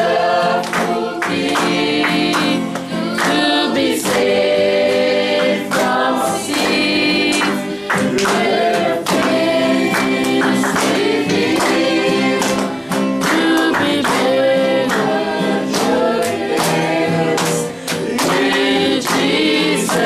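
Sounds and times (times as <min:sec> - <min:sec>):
congregation singing: 0:00.0 - 0:20.0.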